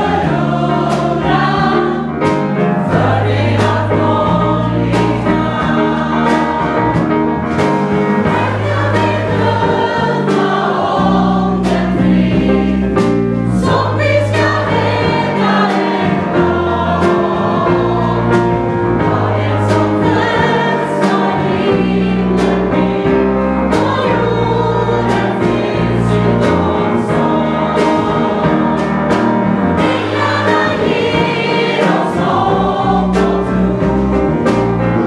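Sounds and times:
bass: 0.0 - 35.0
drums and cymbals: 0.0 - 35.0
gospel choir singing: 0.0 - 35.0
piano: 0.0 - 35.0.

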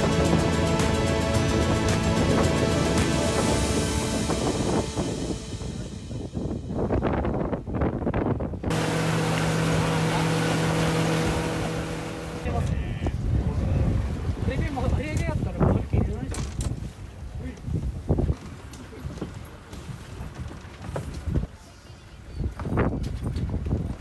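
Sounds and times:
boat engine humming: 0.0 - 15.2
water noise: 0.0 - 16.1
wind: 0.0 - 24.0.

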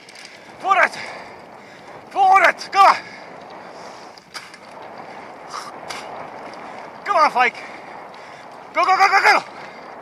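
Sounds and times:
bicycle tyres on dirt path: 0.0 - 10.0
bike rattling: 0.0 - 10.0.

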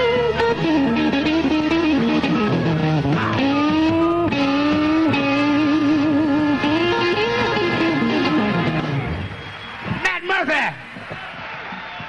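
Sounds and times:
electric guitar descending run: 0.0 - 10.0
live blues band: 0.0 - 10.0.

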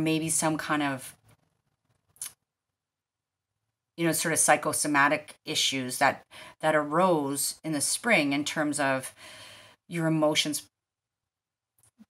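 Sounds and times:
woman speaking: 0.0 - 1.2, 4.0 - 9.2, 9.9 - 10.7.

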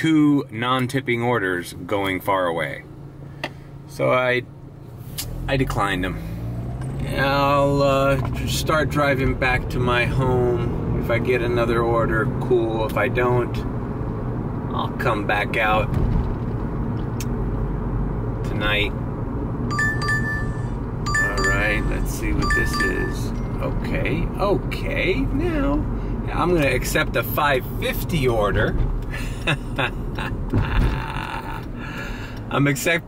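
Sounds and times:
car engine and road rumble: 0.0 - 33.0
man laughing: 29.1 - 31.9.

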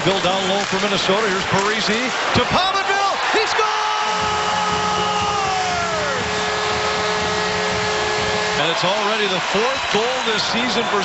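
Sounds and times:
crowd cheering: 0.0 - 11.0
goal horn: 4.0 - 9.3.

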